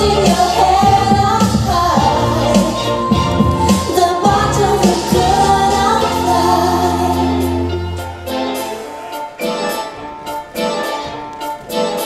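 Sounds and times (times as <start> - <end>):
woman singing: 0.0 - 7.7
instrumental accompaniment: 0.0 - 12.0.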